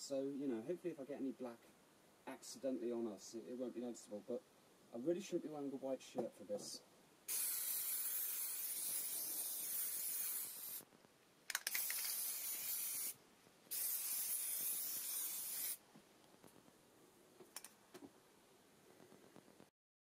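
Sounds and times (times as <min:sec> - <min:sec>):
aerosol can spraying: 0:07.3 - 0:10.8, 0:11.5 - 0:15.8
quick clicks: 0:11.5 - 0:12.3.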